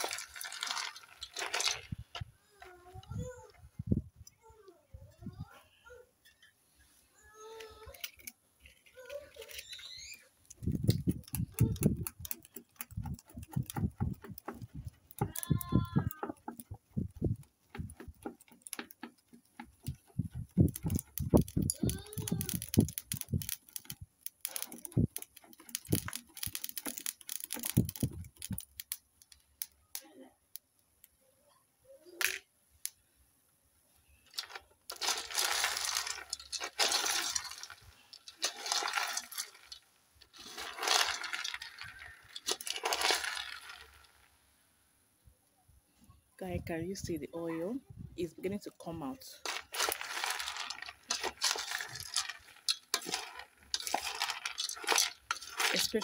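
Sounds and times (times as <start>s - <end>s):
kernels rattling when stirred: 0.0s - 2.3s, 7.7s - 30.0s, 34.2s - 44.3s, 48.3s - 56.0s
kernels crackling in frying pot: 0.0s - 3.3s, 7.4s - 31.1s, 34.0s - 44.4s, 48.3s - 56.0s.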